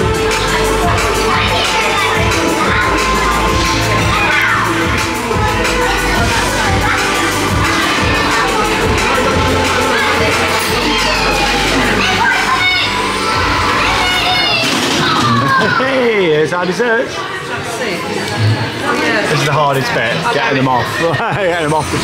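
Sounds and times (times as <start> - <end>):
music with steady bass line: 0.0 - 15.4
crowd chatter and shouts: 0.0 - 22.0.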